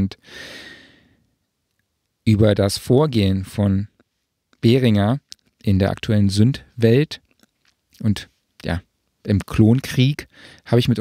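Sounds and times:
person breathing: 0:00.2 - 0:01.3, 0:10.3 - 0:10.7.

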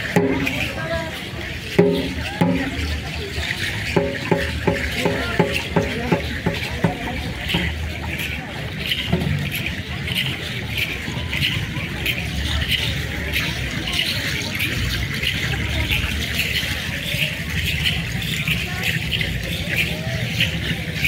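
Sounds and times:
crowd chatter: 0:00.0 - 0:21.0
drum beats: 0:00.0 - 0:21.0.

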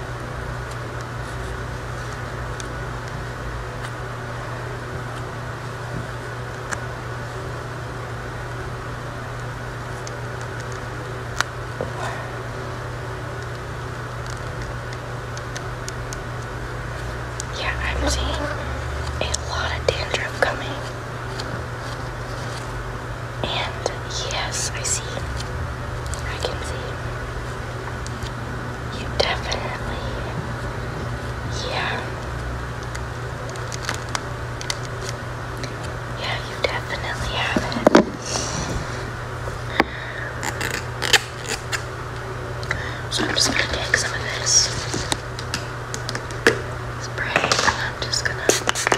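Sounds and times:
steady low hum: 0:00.0 - 0:48.9
person whispering: 0:11.8 - 0:12.6, 0:17.5 - 0:21.0, 0:23.4 - 0:25.4, 0:26.2 - 0:27.1, 0:28.9 - 0:30.4, 0:31.5 - 0:32.2, 0:36.2 - 0:39.0, 0:42.7 - 0:45.1, 0:47.0 - 0:48.9.

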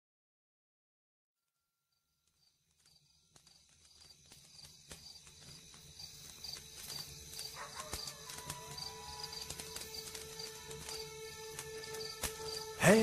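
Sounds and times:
rhythmic clip-clop: 0:02.8 - 0:13.0.

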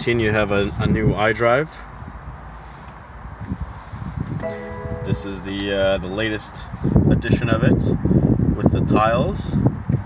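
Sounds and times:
electronic dashboard chime: 0:04.4 - 0:06.1.

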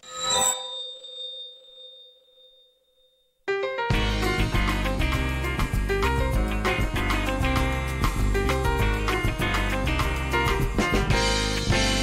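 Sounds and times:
bright bell-like chime: 0:00.0 - 0:03.8.

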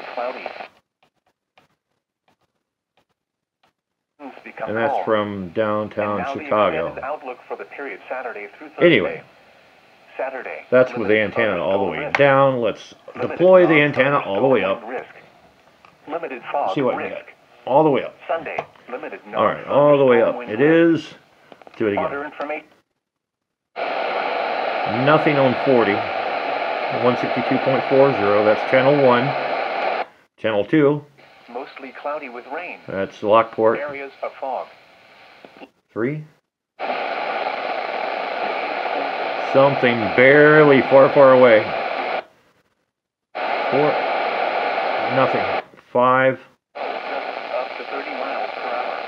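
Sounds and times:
faint voice on radio: 0:00.0 - 0:00.7, 0:04.2 - 0:05.2, 0:23.8 - 0:30.0, 0:36.8 - 0:42.2, 0:43.4 - 0:45.6, 0:46.8 - 0:49.0
radio static hiss: 0:00.0 - 0:00.8, 0:04.2 - 0:22.8, 0:23.8 - 0:30.1, 0:30.7 - 0:36.2, 0:36.8 - 0:49.0.

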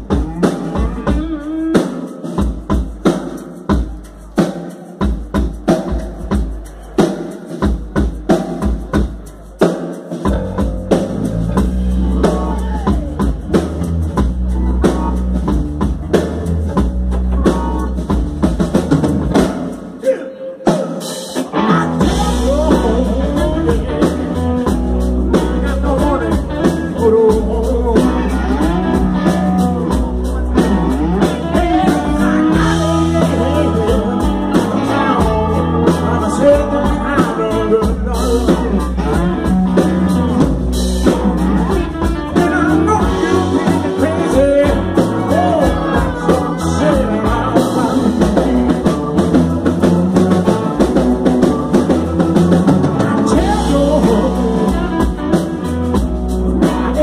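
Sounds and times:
man singing: 0:00.0 - 0:03.0, 0:09.6 - 0:15.2, 0:19.4 - 0:57.0
soul band playing: 0:00.0 - 0:57.0.

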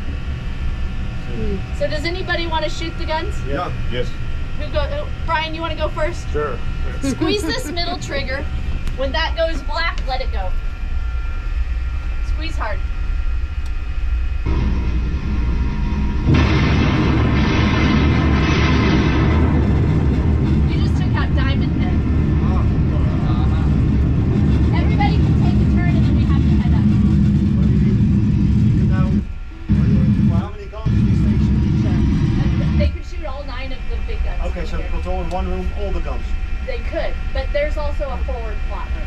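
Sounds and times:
long heavy rumble: 0:00.0 - 0:39.0
voices: 0:01.3 - 0:10.6, 0:12.2 - 0:12.8, 0:20.7 - 0:39.0
loud gun blast: 0:14.5 - 0:24.4.

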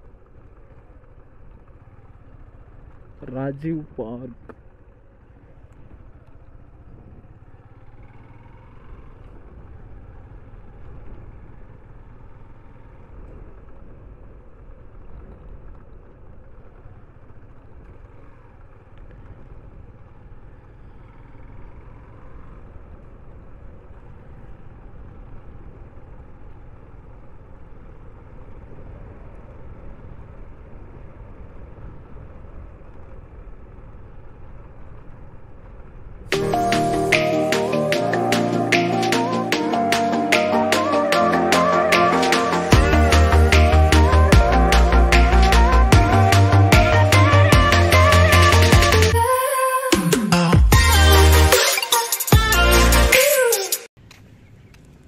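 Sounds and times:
motorcycle engine: 0:00.0 - 0:55.0.

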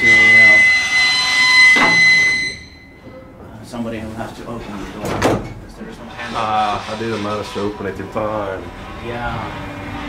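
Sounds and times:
buzzer high tone: 0:00.0 - 0:03.0.

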